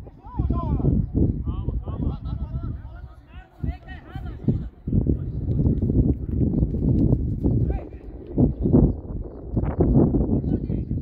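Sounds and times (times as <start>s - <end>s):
players shouting and calling: 0.0s - 5.5s.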